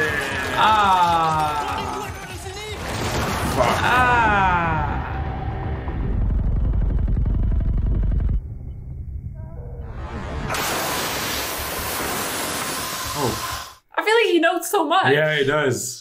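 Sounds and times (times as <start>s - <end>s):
dense low pulsing sound: 4.4s - 10.5s
loud hiss with falling sweep: 10.4s - 13.8s.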